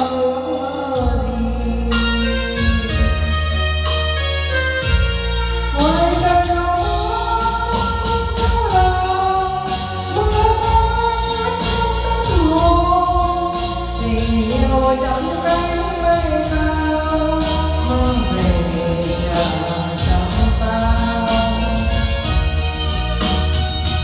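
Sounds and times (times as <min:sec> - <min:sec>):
backing track with bass line: 0:00.0 - 0:24.0
woman singing karaoke: 0:00.0 - 0:24.0.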